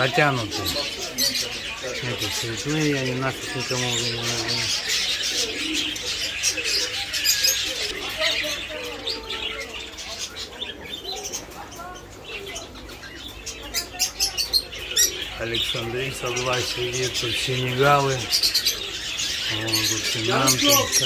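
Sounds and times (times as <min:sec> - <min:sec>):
birds chirping and twittering: 0:00.0 - 0:21.0.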